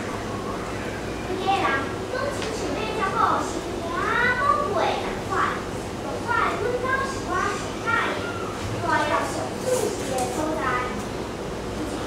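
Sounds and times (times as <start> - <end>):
girl speaking: 1.3 - 11.0.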